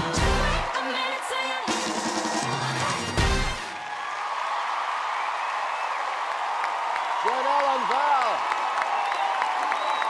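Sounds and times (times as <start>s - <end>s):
audience applauding and cheering: 0.0s - 10.0s.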